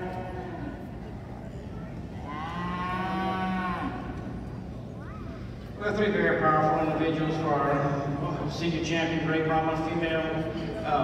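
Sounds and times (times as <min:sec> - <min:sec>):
cattle mooing: 0:02.2 - 0:04.2.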